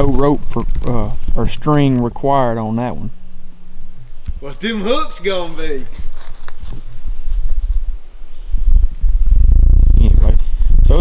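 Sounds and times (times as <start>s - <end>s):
low rumbling microphone noise: 0.0s - 11.0s.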